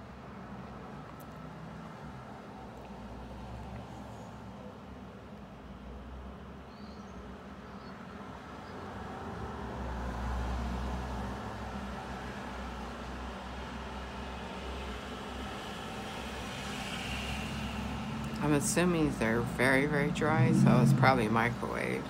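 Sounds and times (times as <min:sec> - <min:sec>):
road traffic rumble: 0:08.3 - 0:22.0.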